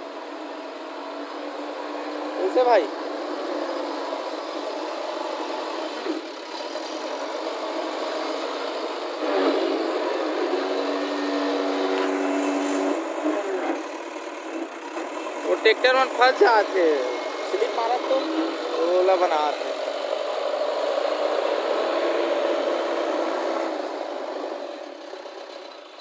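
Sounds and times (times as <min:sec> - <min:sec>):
diesel engine running: 0:00.0 - 0:26.0.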